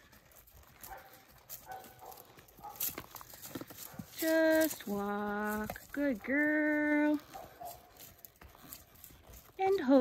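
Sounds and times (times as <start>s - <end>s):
horse hooves on dirt: 0.0s - 10.0s.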